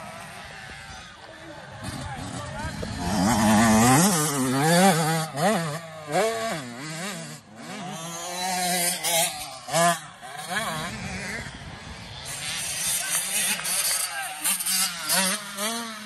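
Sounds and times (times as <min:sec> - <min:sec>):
dirt bike engine revving: 0:00.0 - 0:16.0.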